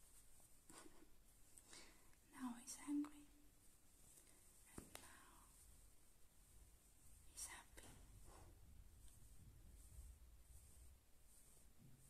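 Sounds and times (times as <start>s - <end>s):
person whispering: 2.2s - 3.4s, 4.6s - 5.6s, 7.2s - 8.5s
soft voiced sound: 2.3s - 3.5s.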